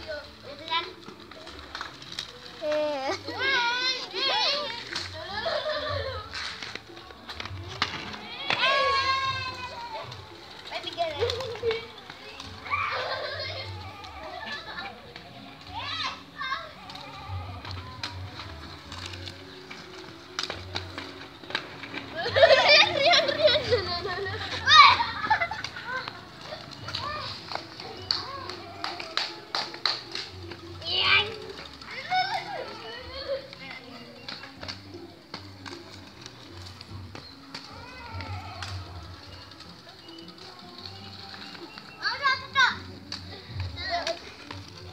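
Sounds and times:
children calling: 0:00.0 - 0:44.9
skate wheels rolling on concrete: 0:00.0 - 0:44.9.

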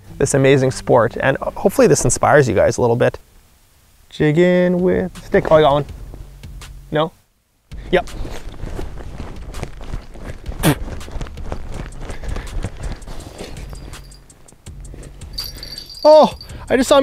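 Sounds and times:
crunching on snow and ice: 0:08.1 - 0:14.6.

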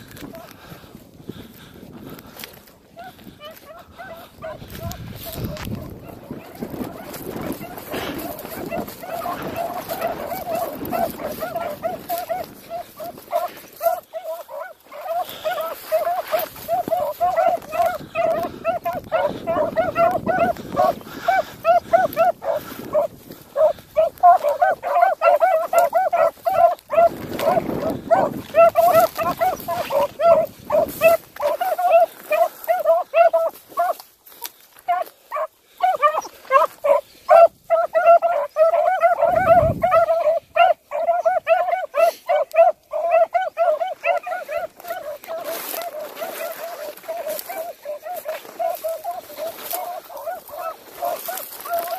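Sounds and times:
hounds baying: 0:00.0 - 0:51.9.

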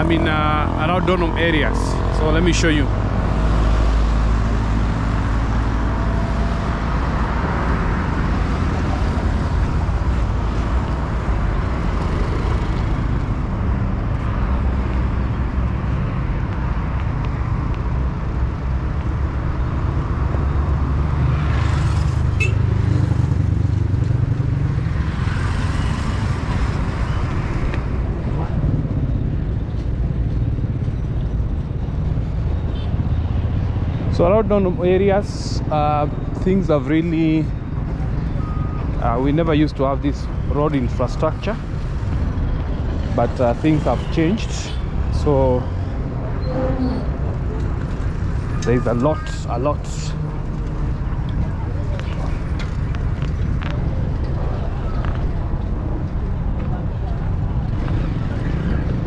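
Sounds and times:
traffic rumble: 0:00.0 - 0:59.0
vehicles passing: 0:00.0 - 0:59.0.

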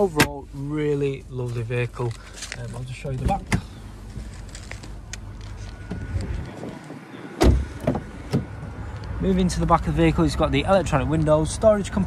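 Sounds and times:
car door shutting with thud: 0:07.4 - 0:08.6.

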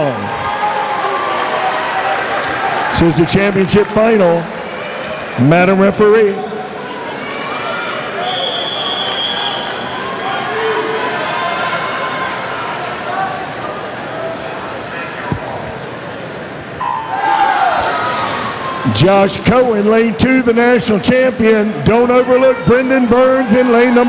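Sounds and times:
referee's long whistle: 0:08.2 - 0:10.0.

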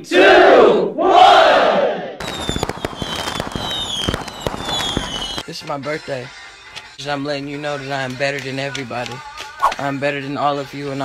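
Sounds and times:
firework whistles sliding down: 0:02.2 - 0:05.4
fireworks crackling and banging: 0:02.2 - 0:05.5.

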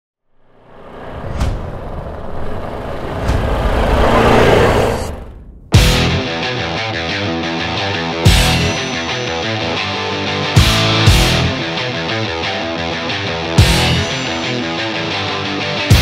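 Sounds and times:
motorcycle engine: 0:00.4 - 0:06.1
heavy rock band: 0:05.8 - 0:16.0.

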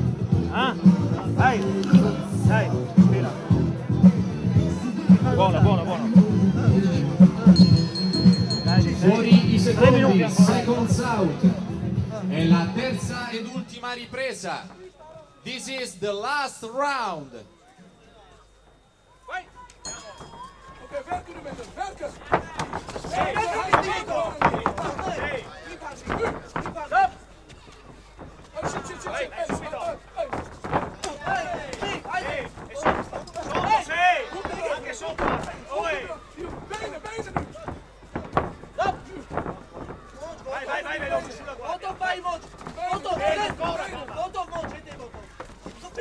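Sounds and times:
faint voices: 0:00.0 - 0:46.0
boxing ring bell strike: 0:07.6 - 0:09.0, 0:19.9 - 0:20.8
thuds of impacts: 0:21.3 - 0:35.7, 0:36.4 - 0:46.0
men shouting: 0:40.2 - 0:45.2.

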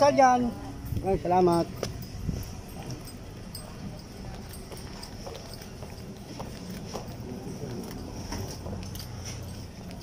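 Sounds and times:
street and market rumble: 0:00.0 - 0:10.0
footsteps on pavement: 0:01.6 - 0:10.0.

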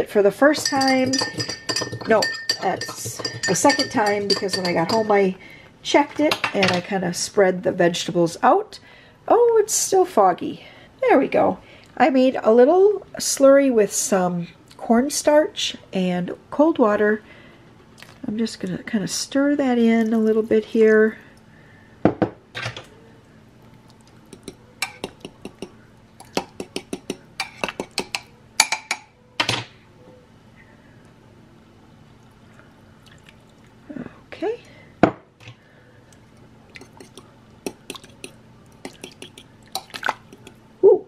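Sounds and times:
liquid being poured and stirred: 0:00.4 - 0:05.2, 0:23.5 - 0:28.3, 0:33.0 - 0:33.8, 0:36.1 - 0:40.7
metal fork clinking on ceramic: 0:00.5 - 0:05.2, 0:24.3 - 0:29.1, 0:36.8 - 0:40.6.

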